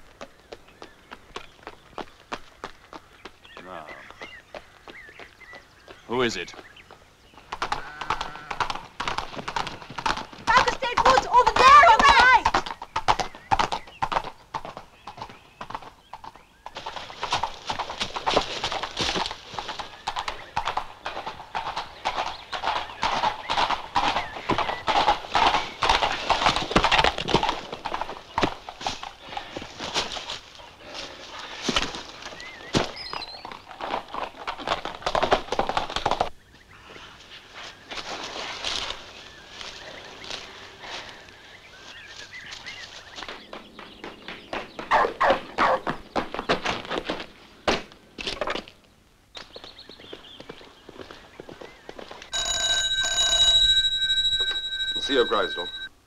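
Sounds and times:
horse hooves on pavement: 0:00.0 - 0:36.6, 0:37.9 - 0:55.9
horse whinnying: 0:07.6 - 0:08.9.

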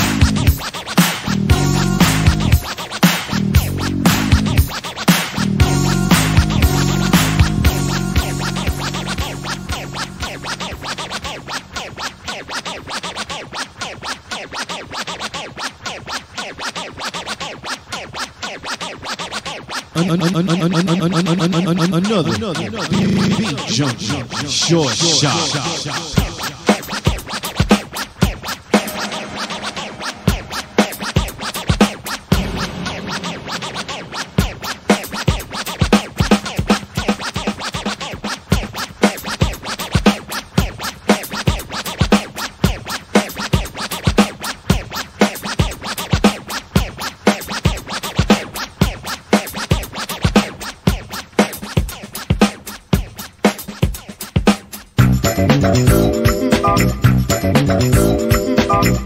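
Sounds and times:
hip hop beat with kick drum: 0:00.0 - 0:59.0
turntable scratching: 0:00.0 - 0:59.0
thinned-out music bed: 0:55.0 - 0:59.0.

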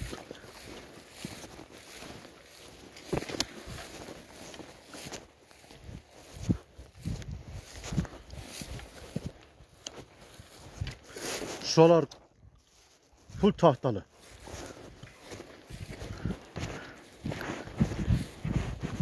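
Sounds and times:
footsteps through dry grass: 0:00.0 - 0:19.0.

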